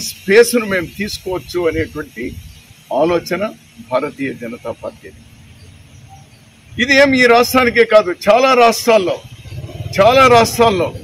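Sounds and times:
man talking: 0.0s - 5.2s, 6.7s - 11.0s.

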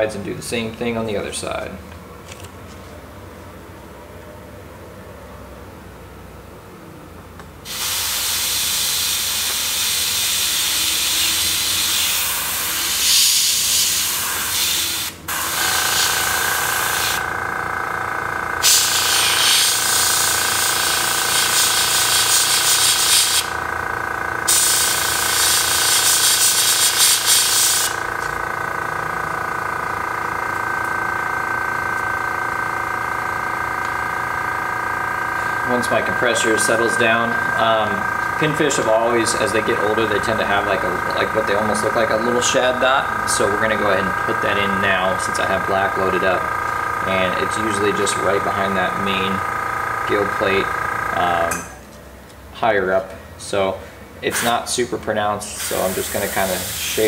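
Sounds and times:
air compressor whine: 0.0s - 57.0s
airbrush spraying hiss: 7.7s - 17.2s, 18.6s - 20.2s, 21.3s - 23.5s, 24.5s - 28.0s, 55.6s - 57.0s.

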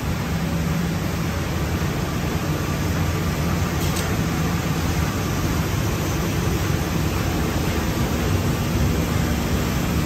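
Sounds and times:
machine humming with airy hiss: 0.0s - 10.0s.

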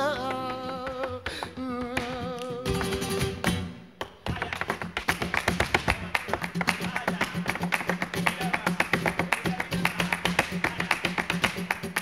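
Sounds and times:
flamenco guitar: 0.0s - 12.0s
flamenco shoes striking stage: 0.0s - 12.0s.

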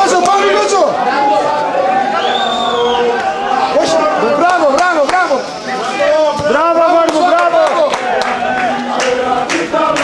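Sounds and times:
football supporters chanting: 0.0s - 10.0s.

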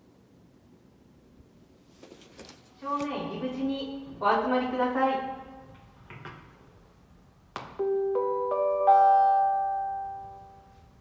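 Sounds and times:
public address chime tones: 7.8s - 10.8s.

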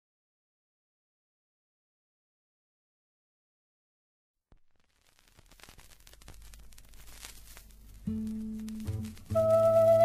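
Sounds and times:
vinyl record crackle: 4.5s - 10.0s.

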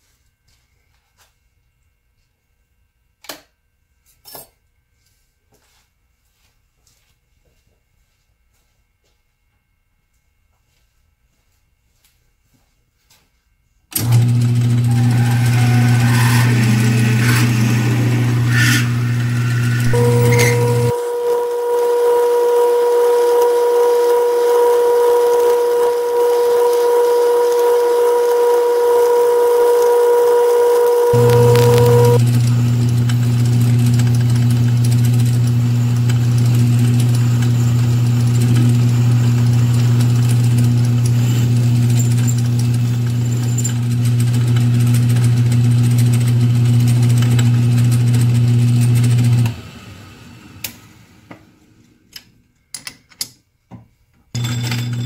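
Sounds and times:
metal lathe drilling: 14.0s - 49.8s.

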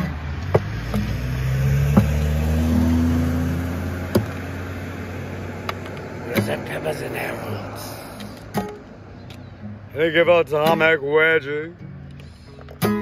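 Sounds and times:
acoustic guitar strummed: 6.3s - 7.2s, 8.3s - 13.0s.

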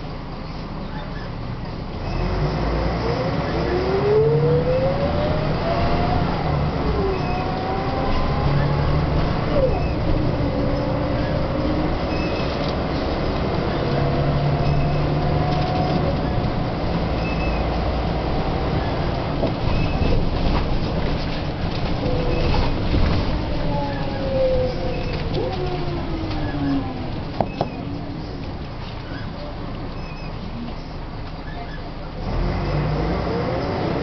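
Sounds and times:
bus diesel engine whining: 0.0s - 34.0s.

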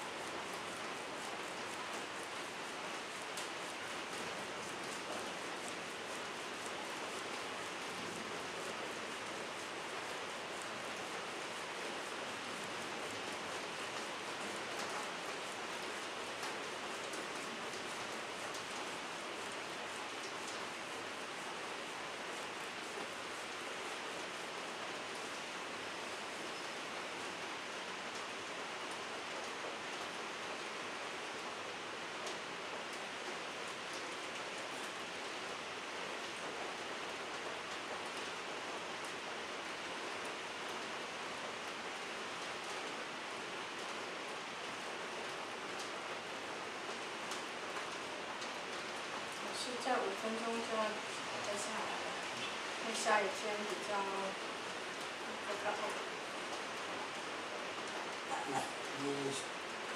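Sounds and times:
steady hiss: 0.0s - 59.9s.

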